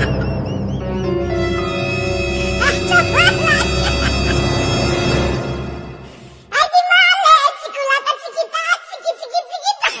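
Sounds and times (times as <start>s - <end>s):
high-pitched laughter: 0.0s - 0.5s, 2.6s - 4.6s.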